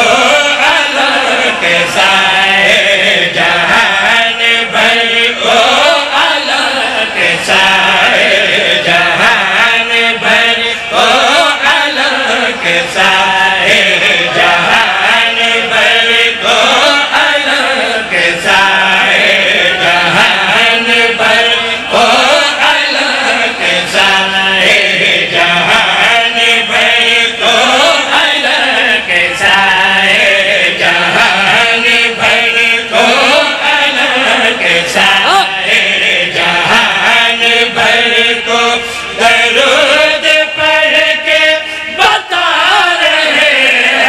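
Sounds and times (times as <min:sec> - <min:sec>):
men chanting into microphones: 0:00.0 - 0:44.0.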